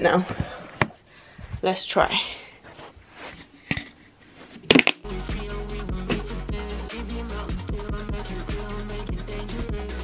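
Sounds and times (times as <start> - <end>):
music with a steady beat: 5.0 - 10.0.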